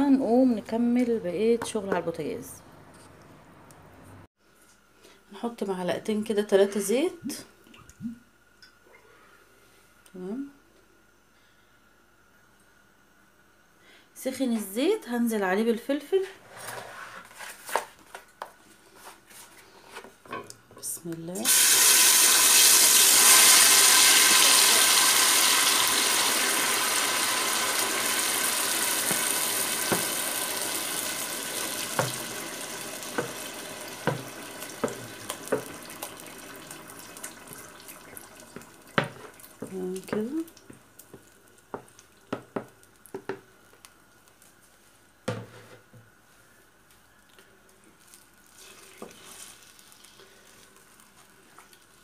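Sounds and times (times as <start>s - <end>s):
peppers sizzling in hot oil: 21.3s - 44.4s, 48.1s - 52.0s.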